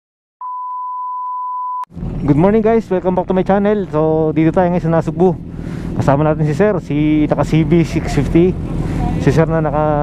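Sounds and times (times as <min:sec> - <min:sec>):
reference tone beep: 0:00.4 - 0:01.9.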